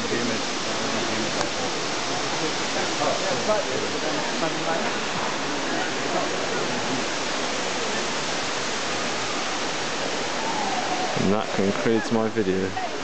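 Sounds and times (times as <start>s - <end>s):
murmur of distant voices: 0.0s - 13.0s
steady rushing background noise: 0.0s - 13.0s.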